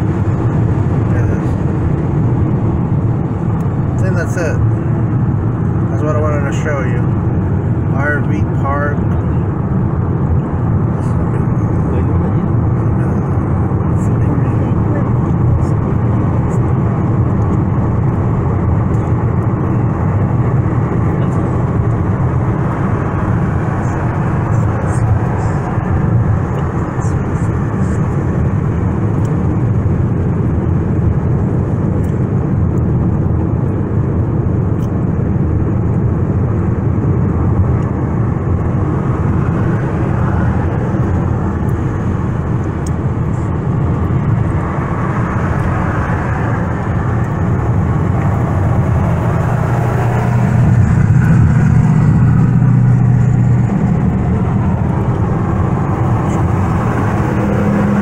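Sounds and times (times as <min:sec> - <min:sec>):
car road and engine noise: 0:00.0 - 0:58.0
low hum: 0:07.0 - 0:58.0.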